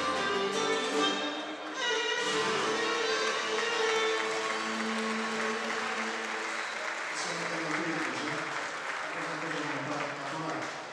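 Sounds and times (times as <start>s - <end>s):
lyra and lute ensemble: 0.0s - 5.6s
audience applauding: 2.2s - 10.9s.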